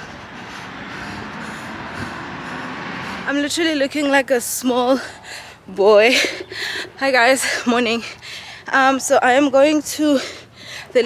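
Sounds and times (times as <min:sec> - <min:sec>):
road traffic noise: 0:00.0 - 0:11.0
woman's voice: 0:03.2 - 0:11.0.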